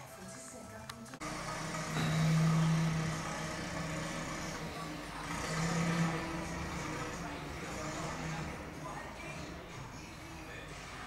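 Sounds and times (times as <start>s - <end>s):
loader machinery humming: 1.0s - 11.0s.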